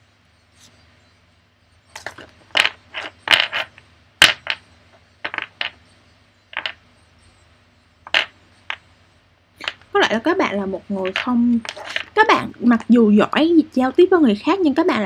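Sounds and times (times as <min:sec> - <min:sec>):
cards being shuffled: 0:11.0 - 0:12.1.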